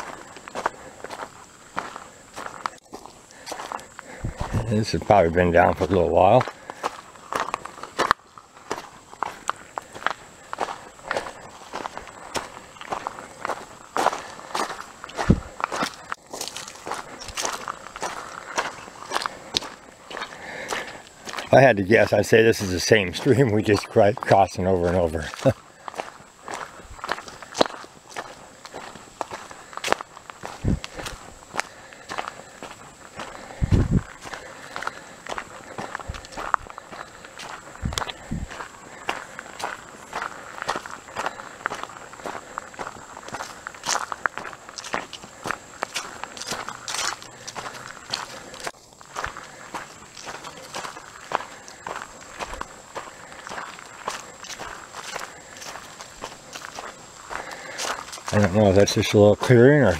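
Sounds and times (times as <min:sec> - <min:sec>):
footsteps crunching dead leaves: 0:00.0 - 0:59.9.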